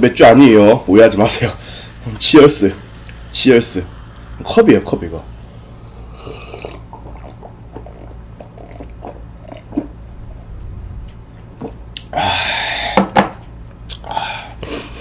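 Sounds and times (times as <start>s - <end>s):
person gulping a drink: 6.0s - 10.8s.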